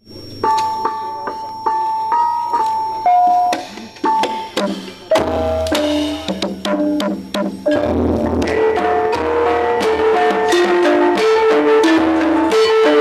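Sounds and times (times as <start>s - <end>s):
gamelan ensemble playing: 7.7s - 13.0s.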